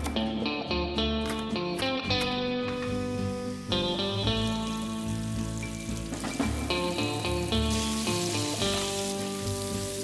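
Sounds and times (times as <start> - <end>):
background music: 0.0 - 10.0
meat sizzling in a frying pan: 2.9 - 10.0.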